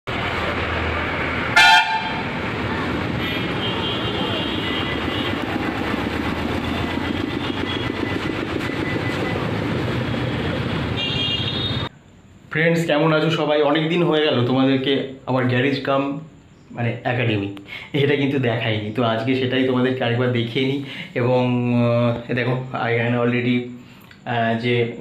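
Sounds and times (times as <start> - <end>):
street traffic: 0.1 - 12.5
vehicle horn blast: 1.5 - 2.3, 3.2 - 5.4, 11.0 - 11.9
faint horn toots: 1.6 - 2.3.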